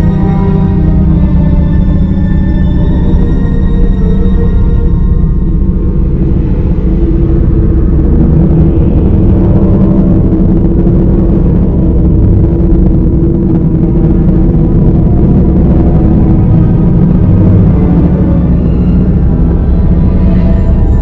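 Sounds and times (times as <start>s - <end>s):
dark ambient drone: 0.0s - 21.0s.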